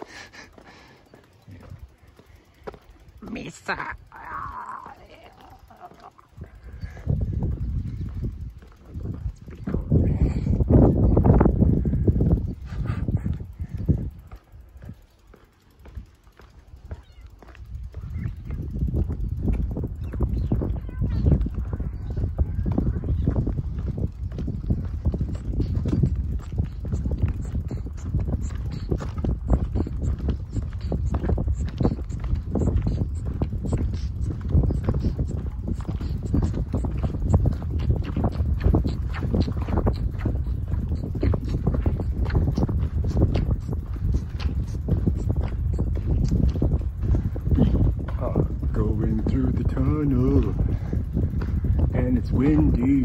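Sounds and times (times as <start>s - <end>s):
bicycle tyre rumble on pavement: 0.0s - 53.0s
wind buffeting microphone: 0.0s - 53.0s.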